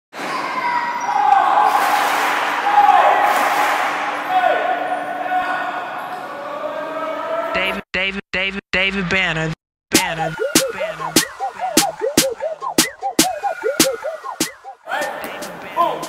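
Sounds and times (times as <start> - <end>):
children's voices echoing: 0.2 - 1.6.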